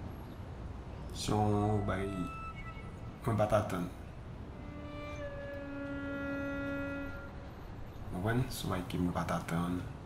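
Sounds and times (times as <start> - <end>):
low background hum: 0.0 - 10.0
held musical tone: 1.2 - 8.6.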